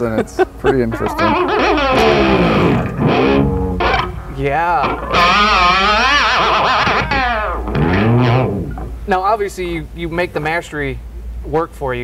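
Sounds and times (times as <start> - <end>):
electric guitar whammy bar bends: 1.2 - 9.0.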